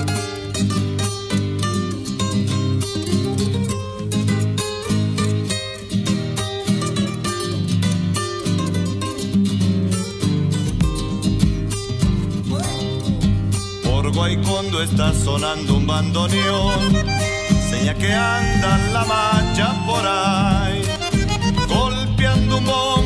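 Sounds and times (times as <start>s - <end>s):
acoustic guitars strummed: 0.0s - 23.0s
deep bass notes: 10.6s - 23.0s.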